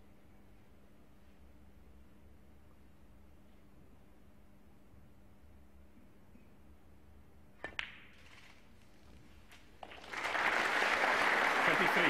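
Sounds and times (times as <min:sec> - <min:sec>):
audience applause: 0:09.8 - 0:12.0.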